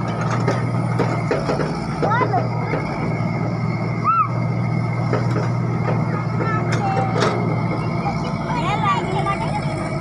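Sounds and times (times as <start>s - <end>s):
clanks from excavator bucket: 0.0s - 3.5s, 5.0s - 7.8s
excavator diesel engine running: 0.0s - 10.0s.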